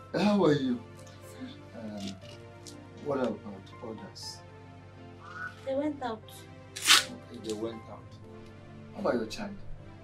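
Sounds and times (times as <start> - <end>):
film background music: 0.0 - 10.0.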